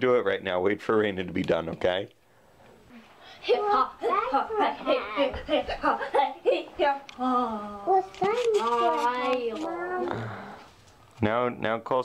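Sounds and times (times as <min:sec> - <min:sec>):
child's long wordless vocal sound: 0:09.6 - 0:10.6.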